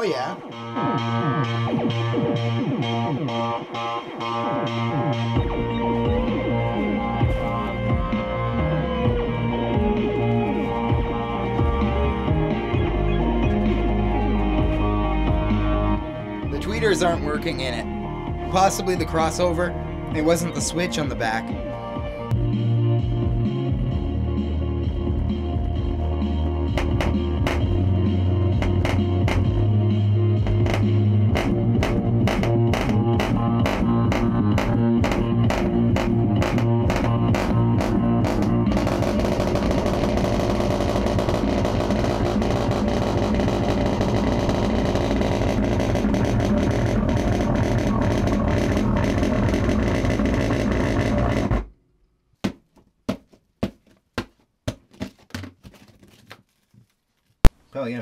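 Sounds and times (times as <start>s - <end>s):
rock music through speaker: 0.0s - 51.5s
sharp knocks: 26.7s - 27.7s.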